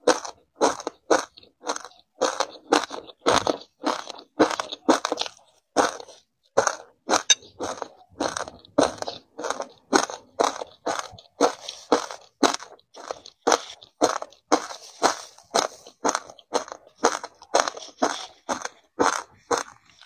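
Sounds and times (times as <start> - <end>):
chewing crunchy ice: 0.0 - 20.0.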